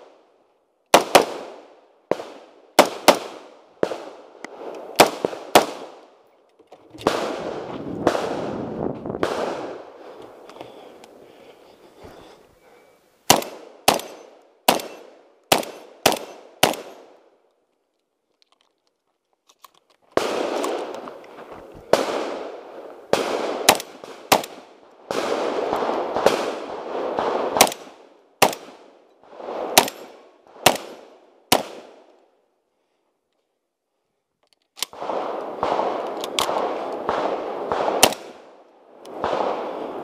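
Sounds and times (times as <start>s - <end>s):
shotgun shots: 1.0s - 4.2s, 5.0s - 6.0s, 7.0s - 9.9s, 13.3s - 17.1s, 20.2s - 21.0s, 21.9s - 28.8s, 29.5s - 32.0s, 34.9s - 38.5s, 39.2s - 40.0s.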